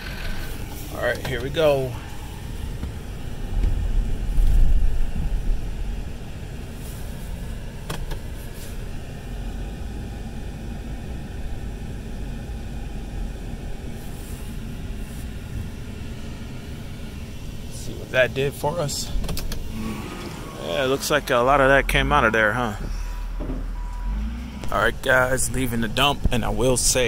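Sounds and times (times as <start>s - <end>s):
diesel truck engine pulling: 0.0s - 27.0s.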